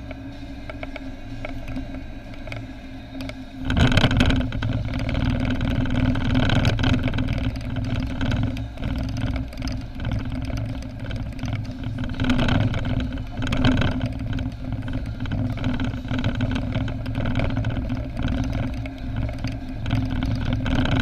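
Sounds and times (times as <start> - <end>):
car engine hum: 0.0 - 21.0.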